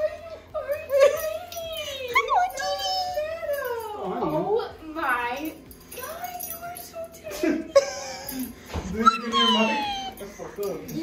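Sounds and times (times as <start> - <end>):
dog whining: 8.2 - 10.3.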